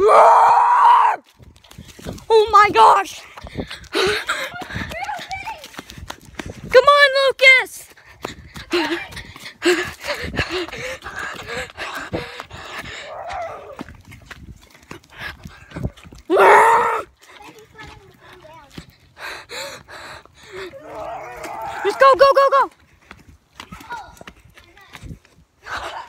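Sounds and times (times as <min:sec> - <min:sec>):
footsteps on forest floor: 0:01.2 - 0:06.8, 0:07.8 - 0:25.6
child shouting: 0:02.3 - 0:03.2, 0:16.3 - 0:17.1, 0:20.7 - 0:22.7, 0:23.7 - 0:25.0.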